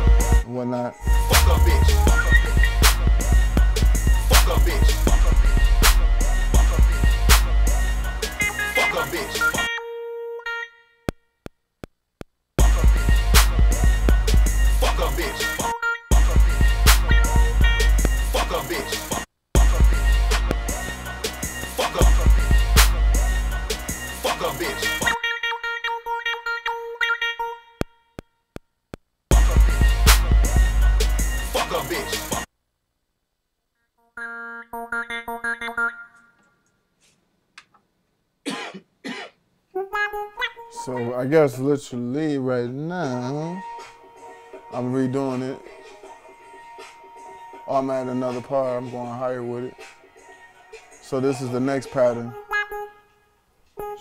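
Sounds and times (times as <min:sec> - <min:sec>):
synthesizer keyboard notes: 0:00.0 - 0:10.6, 0:12.6 - 0:27.8, 0:34.0 - 0:36.4
person coughing: 0:38.4 - 0:39.4.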